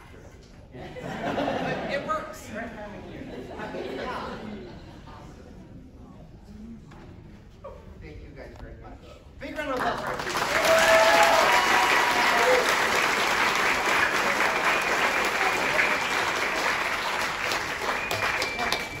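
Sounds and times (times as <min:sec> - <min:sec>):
audience applauding: 0:09.7 - 0:19.0.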